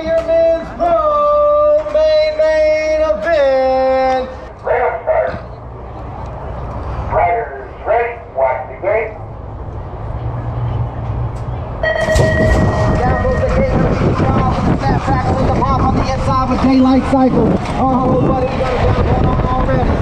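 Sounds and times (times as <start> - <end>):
voice calls over gate speaker: 7.1 - 9.2, 11.8 - 20.0
wind and tyre noise: 9.1 - 20.0
start gate dropping: 11.8 - 13.4
electronic start tone: 11.8 - 13.7.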